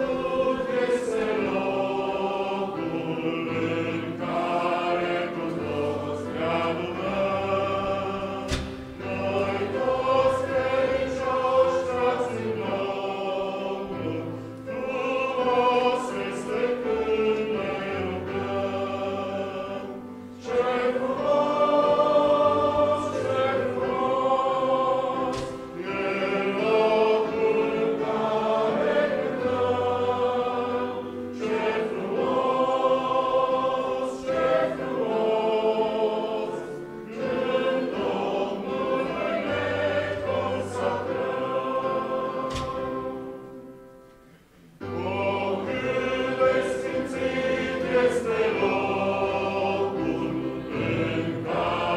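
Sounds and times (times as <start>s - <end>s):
congregation singing a hymn: 0.0s - 51.9s
piano accompaniment: 0.0s - 51.9s.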